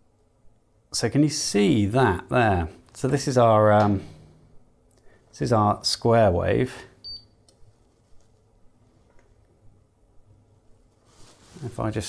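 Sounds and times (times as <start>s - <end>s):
oscilloscope high beep: 7.0s - 7.3s.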